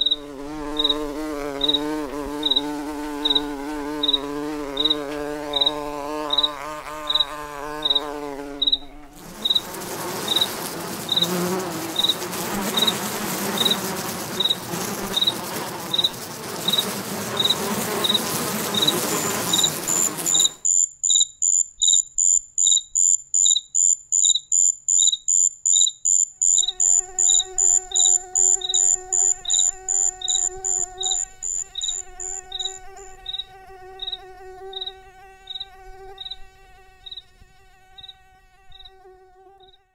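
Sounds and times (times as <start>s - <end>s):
cricket chirping: 0.0s - 13.0s, 13.6s - 16.1s, 17.4s - 36.4s
mosquito whine: 0.0s - 20.8s, 26.4s - 39.9s.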